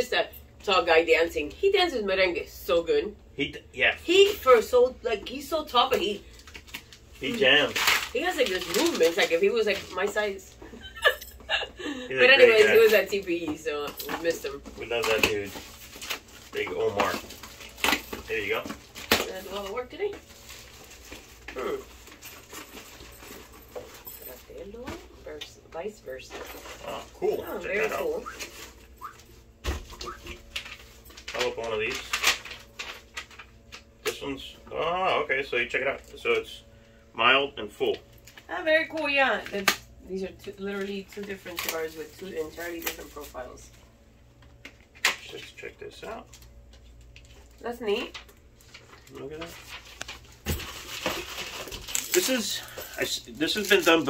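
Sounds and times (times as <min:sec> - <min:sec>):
cellophane wrapper crinkling: 0:06.2 - 0:10.1, 0:14.7 - 0:24.0, 0:26.6 - 0:34.0, 0:46.3 - 0:54.0
packaging rustling: 0:06.2 - 0:10.2, 0:14.0 - 0:24.0, 0:26.4 - 0:33.9, 0:46.3 - 0:54.0.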